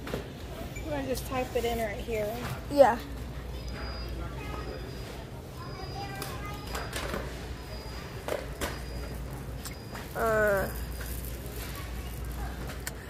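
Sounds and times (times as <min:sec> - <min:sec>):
faint distant voices: 0:02.0 - 0:13.0.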